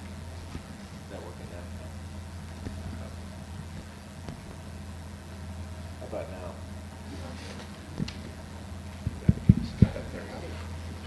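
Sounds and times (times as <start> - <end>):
low hum from sound system: 0.0 - 11.0
dull microphone thumps: 1.4 - 5.4, 7.9 - 10.1.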